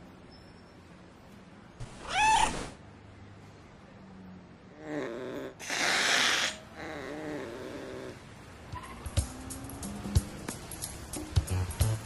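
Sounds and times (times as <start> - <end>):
cat hissing: 2.0 - 2.8, 5.0 - 8.2
cat growling: 4.7 - 8.2.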